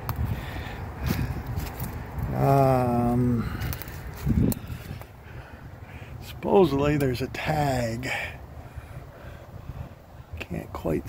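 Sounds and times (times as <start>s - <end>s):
footsteps in dry leaves: 1.0s - 2.4s, 3.4s - 5.1s
faint crackles and clicks: 3.6s - 5.1s.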